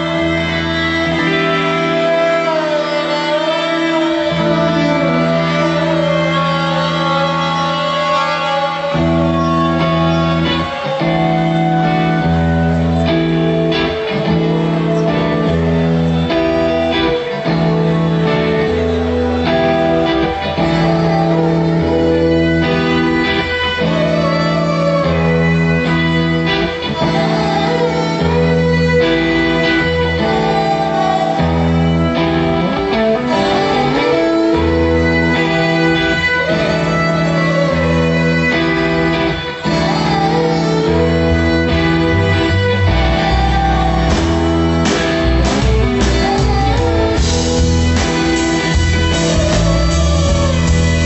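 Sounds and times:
rock band playing live: 0.0 - 51.0.

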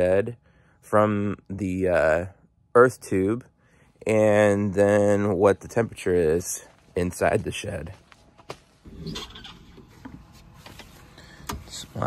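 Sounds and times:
light clicks and rustles: 9.8 - 11.8.

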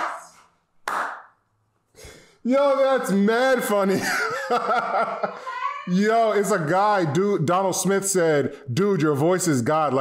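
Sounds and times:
hand claps: 0.0 - 1.4.

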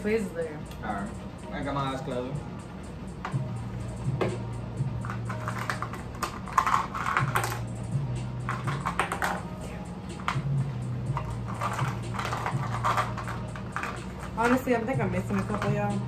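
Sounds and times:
low background music: 0.0 - 16.0
plastic tubes clicking and rattling: 5.0 - 7.6, 11.1 - 16.0.

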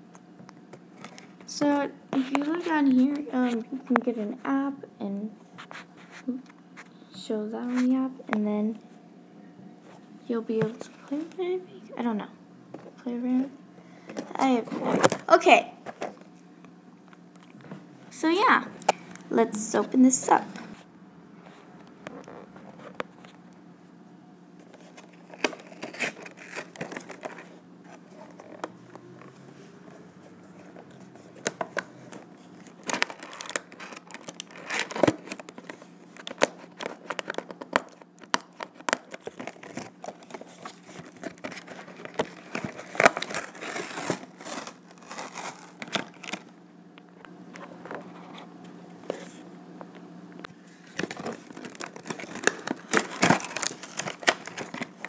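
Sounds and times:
plastic crinkling: 24.6 - 29.5, 30.4 - 46.5, 50.6 - 55.0
cardboard box torn open: 25.0 - 27.3, 32.8 - 35.4, 41.0 - 46.4, 51.0 - 54.9.

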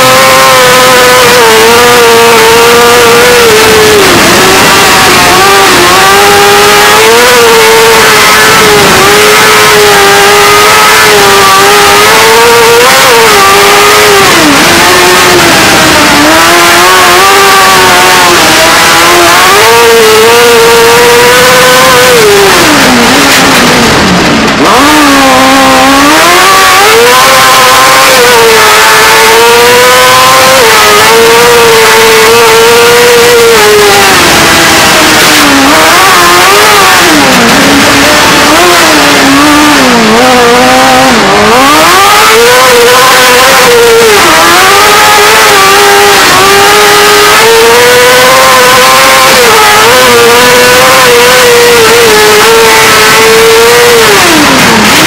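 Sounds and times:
race car engine at high revs: 0.0 - 55.0.

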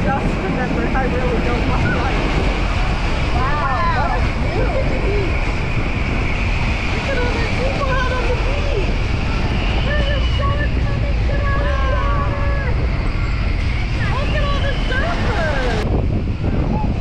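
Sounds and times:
indistinct voices and calls: 0.0 - 17.0
wind rumbling on microphone: 0.0 - 17.0.

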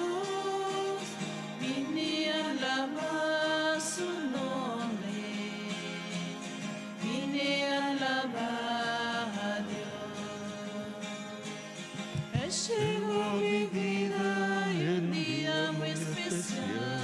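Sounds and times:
slow hymn singing: 0.0 - 17.0
sustained accompaniment: 7.9 - 17.0.

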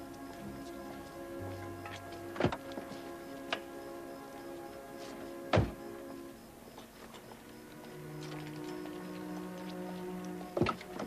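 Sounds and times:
soft background music: 0.0 - 11.0
car doors shutting: 5.5 - 5.8.

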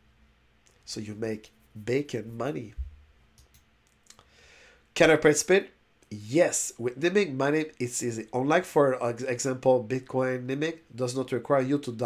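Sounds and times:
computer mouse clicks: 3.4 - 4.2.

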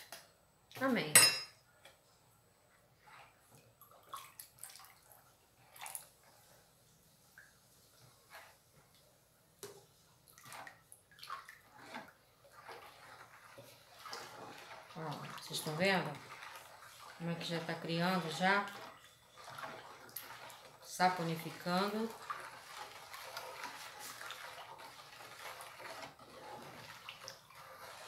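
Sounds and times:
ladle stirring thick liquid: 1.7 - 28.0
liquid pouring: 3.8 - 6.3, 9.6 - 28.0.

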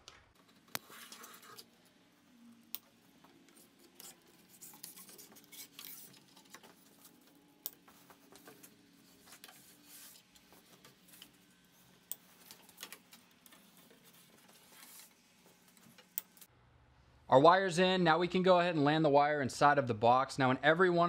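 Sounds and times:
cable rustling through wood: 2.9 - 16.5.

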